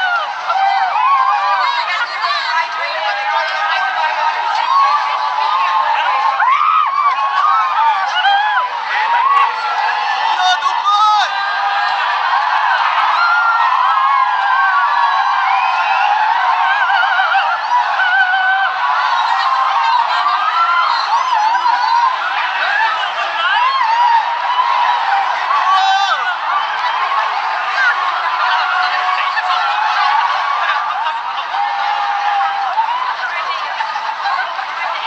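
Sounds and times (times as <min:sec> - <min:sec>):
crowd shouting and cheering: 0:00.0 - 0:35.0.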